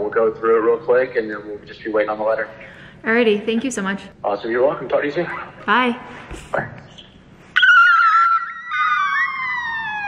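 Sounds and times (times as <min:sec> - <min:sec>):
woman screaming: 0:07.6 - 0:10.0.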